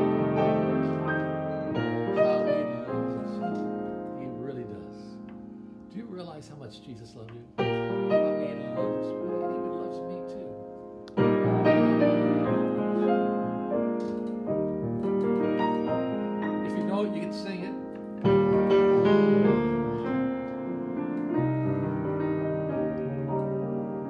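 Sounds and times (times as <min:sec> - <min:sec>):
grand piano gospel chords: 0:00.0 - 0:24.0.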